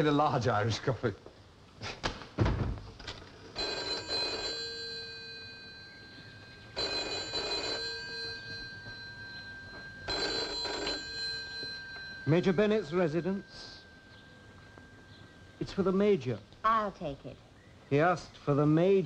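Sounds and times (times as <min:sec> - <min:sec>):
telephone bell ringing: 0:03.5 - 0:15.6.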